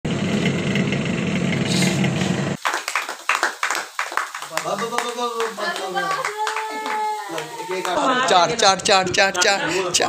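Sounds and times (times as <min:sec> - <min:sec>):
people clapping: 0:02.6 - 0:08.2.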